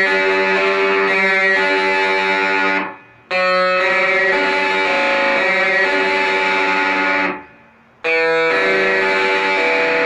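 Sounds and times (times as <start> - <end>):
overdriven electric guitar arpeggio: 0.0 - 10.0.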